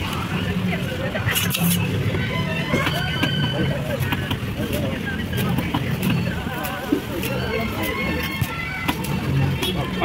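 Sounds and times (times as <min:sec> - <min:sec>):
market hum: 0:00.0 - 0:10.0
market voices: 0:00.0 - 0:10.0.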